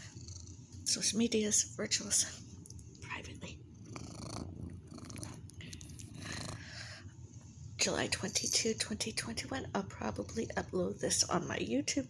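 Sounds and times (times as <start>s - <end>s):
cat purring: 0.0s - 1.5s, 3.2s - 7.1s, 8.2s - 11.4s.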